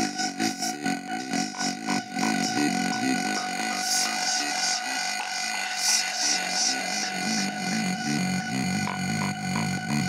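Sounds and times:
held synth tone: 0.0 - 10.0.

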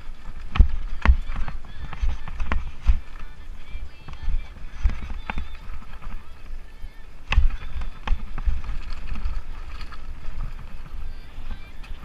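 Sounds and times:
bike tyres on loose stones: 0.0 - 12.0
wind rumbling on microphone: 0.0 - 12.0.

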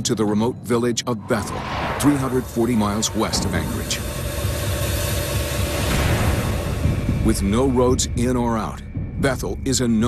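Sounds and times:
even hiss: 1.2 - 7.8.

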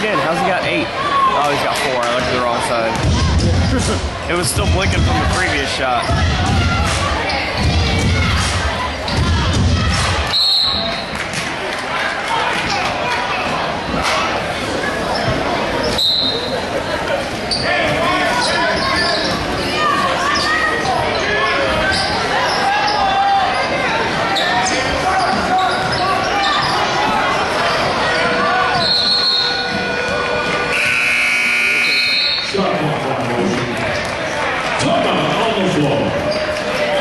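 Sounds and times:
crowd voices and shouting: 0.0 - 37.0.

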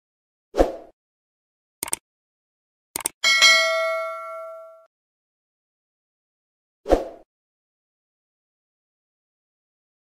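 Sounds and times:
mouse clicks: 3.0 - 3.2
bell ding: 3.2 - 4.9.

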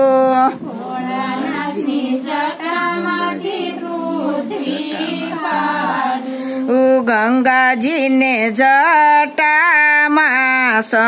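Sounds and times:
women singing unaccompanied: 0.0 - 11.0.

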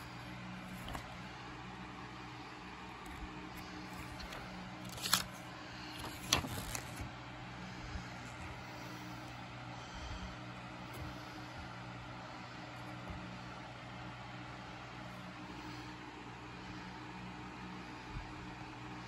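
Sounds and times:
plastic case handling noises: 0.0 - 1.4, 3.0 - 7.1
steady low hum: 0.0 - 19.0.

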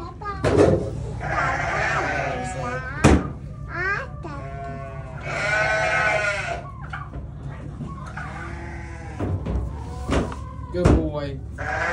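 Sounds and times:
animal bleating: 1.1 - 3.0, 4.3 - 6.7, 8.2 - 9.3, 11.6 - 11.9.

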